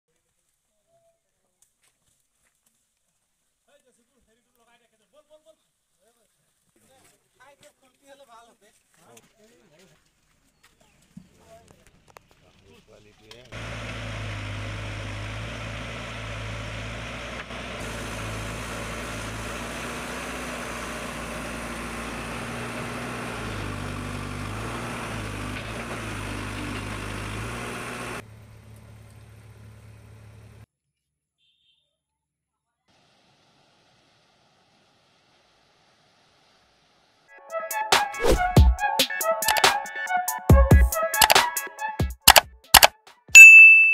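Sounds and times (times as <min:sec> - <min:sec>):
diesel engine running loudly: 0:13.6 - 0:30.6.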